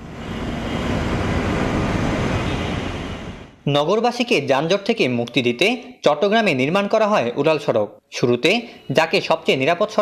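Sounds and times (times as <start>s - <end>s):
road traffic noise: 0.0s - 3.6s.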